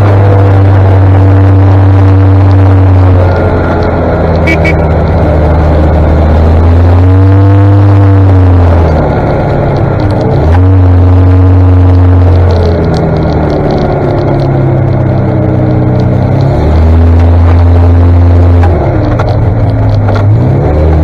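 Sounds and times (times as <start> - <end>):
armoured car engine running: 0.0 - 21.0.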